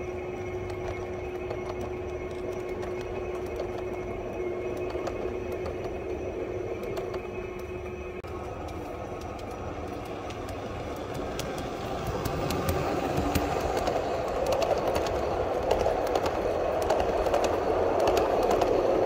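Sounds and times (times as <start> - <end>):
model train humming past: 0.0 - 19.0
model train wheels clicking: 0.0 - 19.0.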